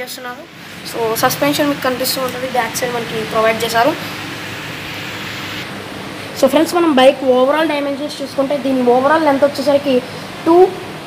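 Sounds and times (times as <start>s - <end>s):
steady rushing noise: 0.4s - 7.3s.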